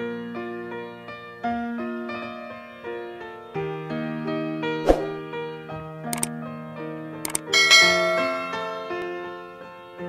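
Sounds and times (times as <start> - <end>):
sharp double click effect: 7.3 - 7.5.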